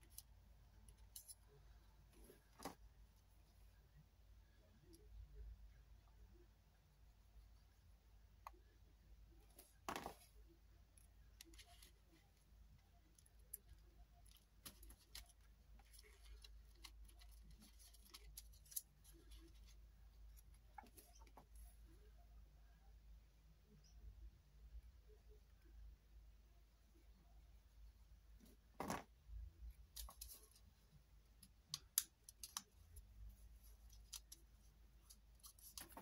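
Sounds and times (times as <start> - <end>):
faint paper clicks and rustles: 13.0 - 21.8, 29.9 - 30.7, 31.4 - 36.0
faint clicks and taps handling paper: 31.4 - 36.0.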